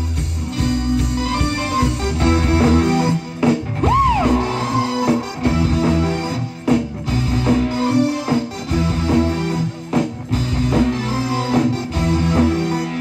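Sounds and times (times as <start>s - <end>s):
live band playing: 0.0s - 13.0s
high swooping note: 3.8s - 7.0s.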